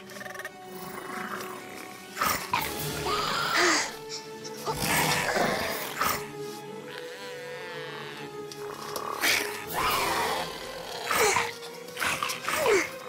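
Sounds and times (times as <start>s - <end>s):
background music: 0.0s - 13.0s
loud growling roars: 7.8s - 12.9s.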